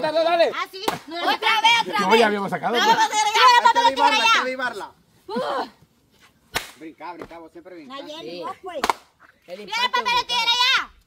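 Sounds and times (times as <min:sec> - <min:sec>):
people reacting: 0:00.0 - 0:05.8
sandal slapping a person: 0:06.5 - 0:07.3, 0:08.8 - 0:09.1.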